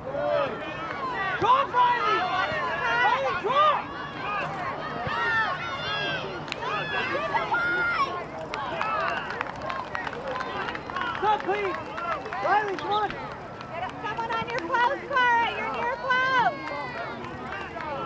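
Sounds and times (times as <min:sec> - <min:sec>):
voices talking and calling out: 0:00.0 - 0:18.0.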